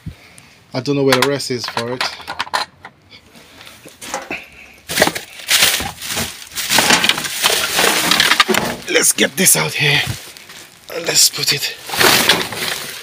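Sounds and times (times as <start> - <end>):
plastic bin bags rustling: 3.7 - 13.0.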